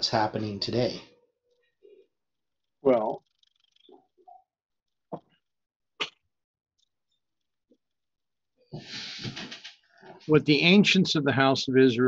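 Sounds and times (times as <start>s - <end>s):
person's sharp bursts of breath: 8.8s - 9.6s.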